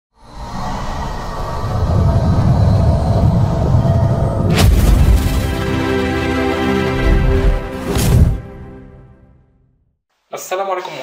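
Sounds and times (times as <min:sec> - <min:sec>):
deep rumbling swell: 0:00.2 - 0:07.8.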